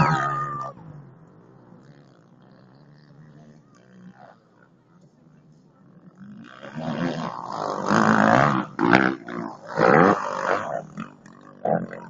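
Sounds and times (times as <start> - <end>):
dirt bike engine revving: 0.0 - 4.8, 5.9 - 12.0.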